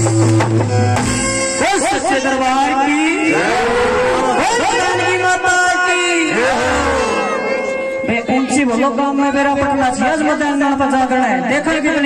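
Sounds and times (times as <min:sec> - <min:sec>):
man singing through loudspeaker: 0:01.6 - 0:12.0.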